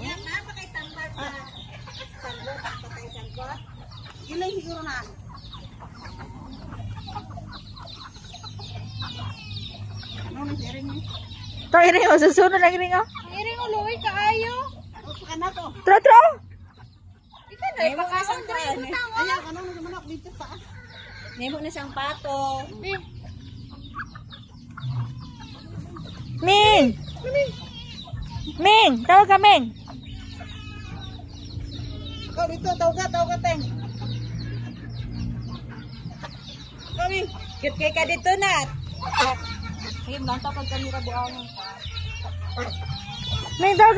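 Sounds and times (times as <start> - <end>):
chickens clucking: 0.0 - 43.9.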